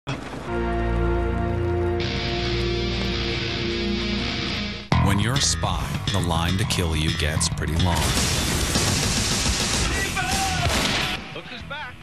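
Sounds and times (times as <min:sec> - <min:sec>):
music: 0:00.5 - 0:12.0
rapid gunfire: 0:08.0 - 0:11.2
loud explosion: 0:08.0 - 0:11.3.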